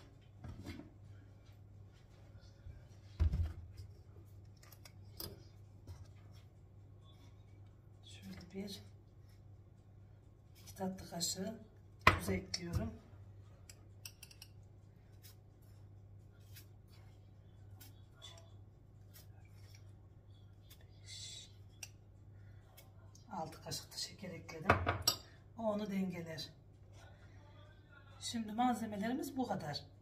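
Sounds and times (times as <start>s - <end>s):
low steady hum: 0.0s - 30.0s
metal spoon clinking in ceramic cup: 14.0s - 14.6s.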